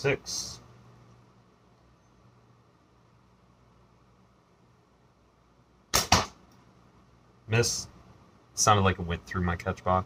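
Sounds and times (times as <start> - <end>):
sharp crack: 5.9 - 6.6.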